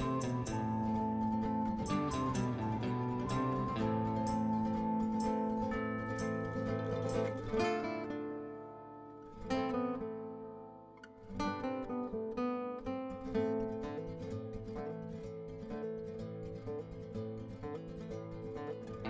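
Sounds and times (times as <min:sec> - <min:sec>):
plucked string instrument chords: 0:00.0 - 0:19.0.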